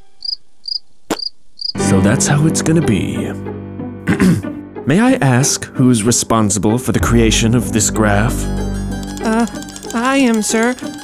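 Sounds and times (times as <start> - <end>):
cricket chirps: 0.2 - 1.8
man speaking: 4.9 - 10.7.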